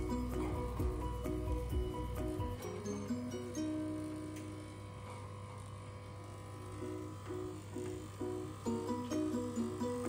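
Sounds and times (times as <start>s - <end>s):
background music with held notes: 0.0s - 5.0s, 6.7s - 10.0s
electric dog clippers humming: 0.0s - 10.0s.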